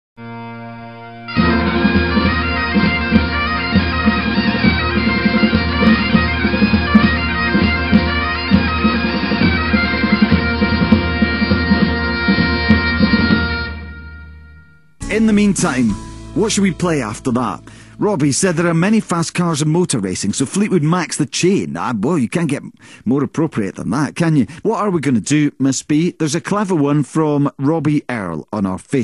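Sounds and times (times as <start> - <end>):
bagpipes playing a tune: 0.2 - 19.2.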